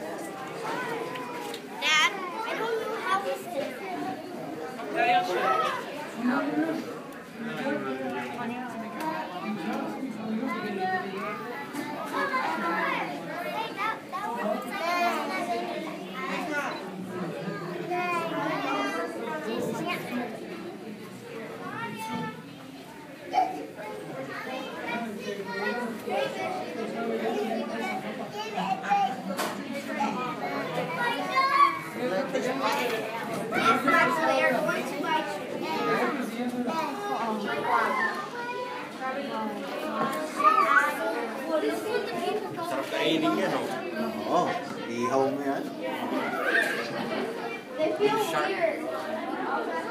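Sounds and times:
children talking and calling out: 0.0s - 49.9s.

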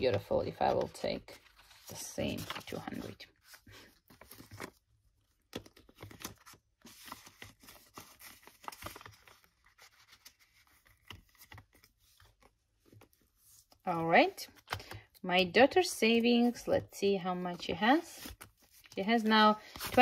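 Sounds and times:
banknotes rustling: 0.0s - 15.0s, 16.0s - 20.0s
plastic binder pocket crinkling: 0.1s - 13.2s.

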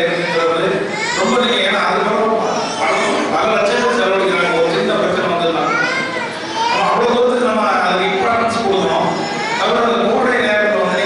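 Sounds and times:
children's voices: 0.0s - 11.0s
man speaking into a microphone: 0.0s - 11.0s.

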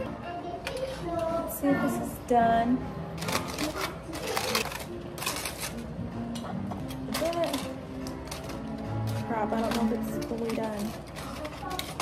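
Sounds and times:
aluminium foil crinkling: 3.1s - 12.0s.

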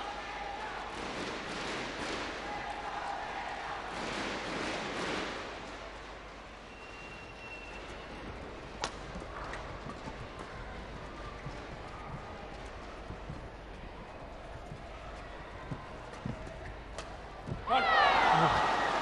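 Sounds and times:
crowd murmur: 7.8s - 19.0s.

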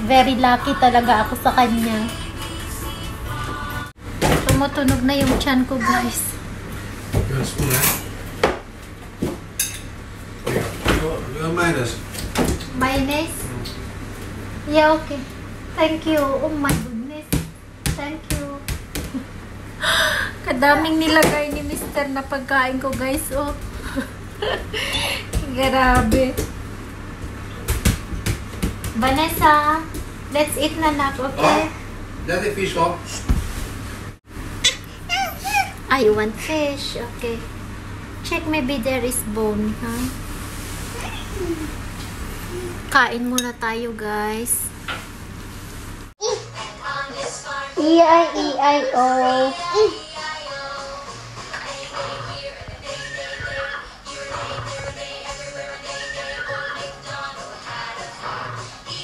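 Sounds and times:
toddler whining: 35.0s - 35.8s.

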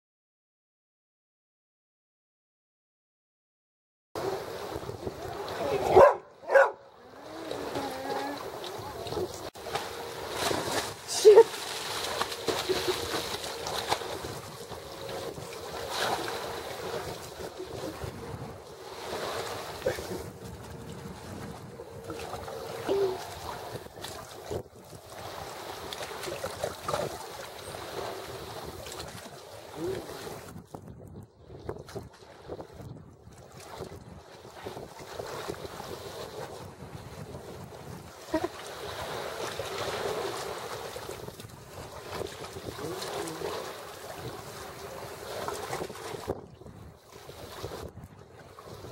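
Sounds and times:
wind buffeting microphone: 4.2s - 11.1s, 11.9s - 48.9s
water lapping against seawall: 4.2s - 48.9s.

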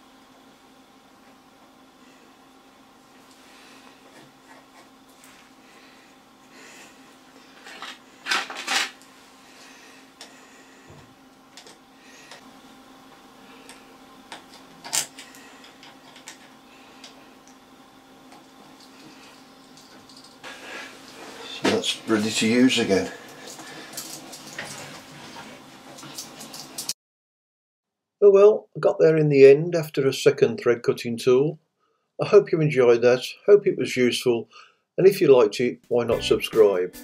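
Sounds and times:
faint steady hum: 0.0s - 26.9s.

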